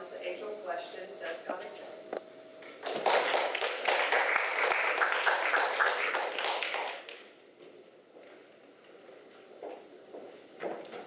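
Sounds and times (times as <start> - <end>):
audience applauding: 2.8 - 7.2.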